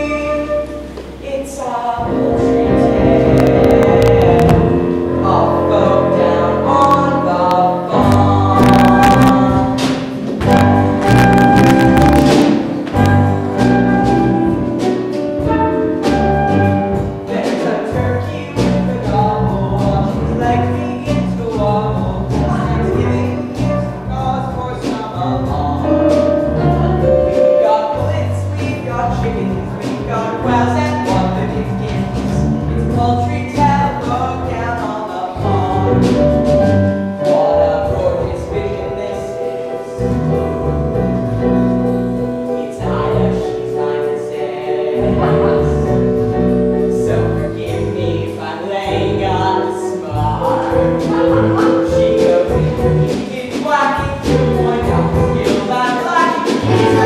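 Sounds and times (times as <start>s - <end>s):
band with keyboard and drums: 0.0s - 57.0s
group singing: 2.0s - 14.3s, 42.4s - 46.4s, 54.2s - 57.0s
band playing sustained chords: 2.0s - 17.2s.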